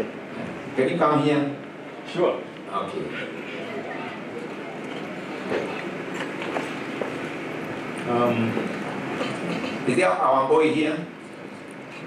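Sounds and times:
murmur of large hall: 0.0 - 12.0.

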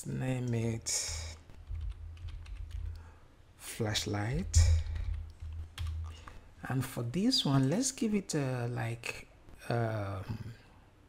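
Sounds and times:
low steady hum: 0.0 - 11.0
typing on computer keyboard: 1.4 - 3.0, 4.5 - 6.2.

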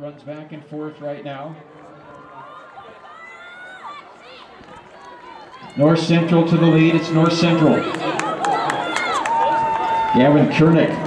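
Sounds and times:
low crowd noise: 0.0 - 11.0.

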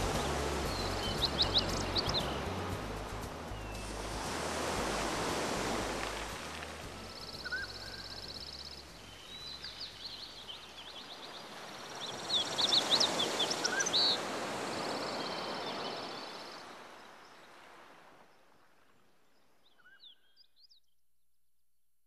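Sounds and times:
small birds chirping: 0.0 - 4.0, 7.0 - 16.7
low held music tone: 0.0 - 10.4
sea surf washing in: 0.0 - 18.3.

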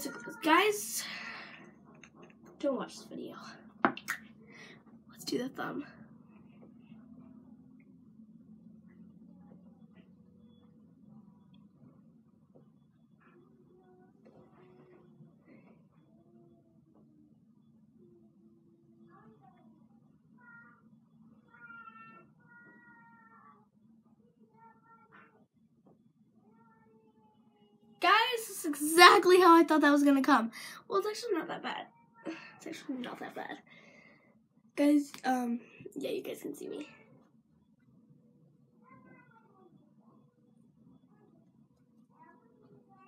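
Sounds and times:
low room hum: 0.0 - 43.0.

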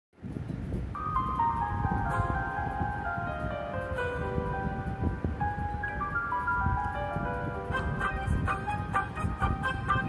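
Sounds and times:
rhythmic low beat: 0.2 - 10.0
held higher synth notes: 1.0 - 10.0.

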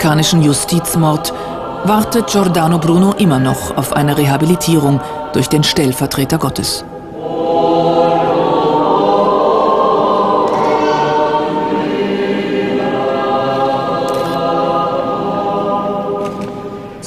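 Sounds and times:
choir singing long notes: 0.1 - 6.0, 6.8 - 17.0.

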